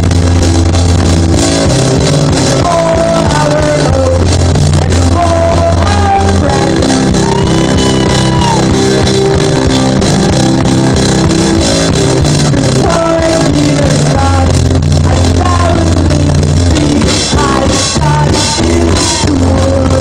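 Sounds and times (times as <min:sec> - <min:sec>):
keyboard and drums band: 0:00.0 - 0:20.0
steady drum beat: 0:00.0 - 0:20.0
synth bass notes: 0:00.0 - 0:20.0
person singing: 0:01.4 - 0:20.0.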